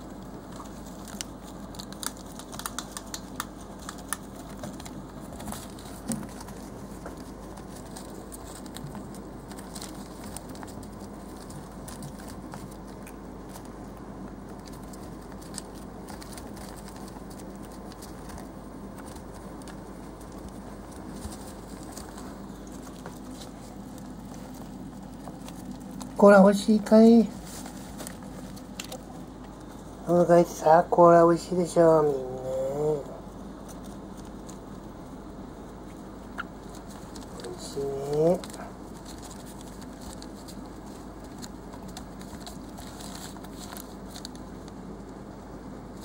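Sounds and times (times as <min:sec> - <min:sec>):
steady low hum: 0:00.0 - 0:46.0
hamsters lapping from a dish: 0:00.4 - 0:26.2
rustling on newspaper bedding: 0:00.4 - 0:46.0.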